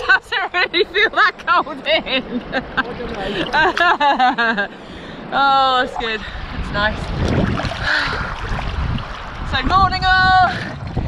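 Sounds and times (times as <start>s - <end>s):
sea water sloshing: 2.9s - 4.1s, 5.7s - 11.0s
wind rumbling on microphone: 5.2s - 11.0s.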